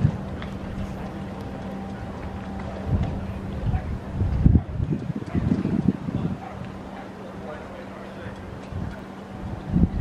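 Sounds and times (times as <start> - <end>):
faint distant voices: 0.0 - 10.0
steady low hum: 0.0 - 10.0
wind buffeting microphone: 0.0 - 10.0.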